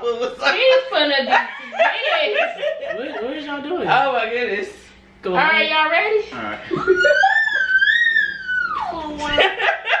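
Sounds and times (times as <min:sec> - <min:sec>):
person's high-pitched squeal: 0:06.9 - 0:09.1.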